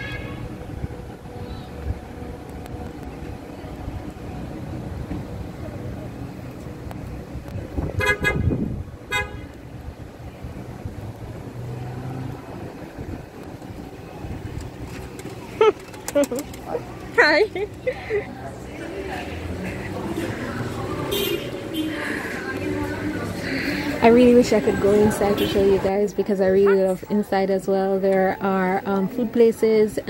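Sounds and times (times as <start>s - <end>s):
low rumble of vehicles: 0.0s - 30.0s
car horn honking: 8.0s - 9.6s, 21.0s - 22.0s, 25.2s - 25.9s.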